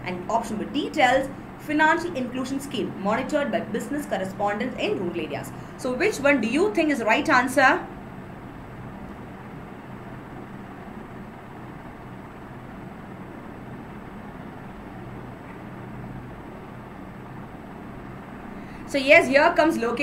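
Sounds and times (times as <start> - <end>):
faint hum: 0.0 - 20.0.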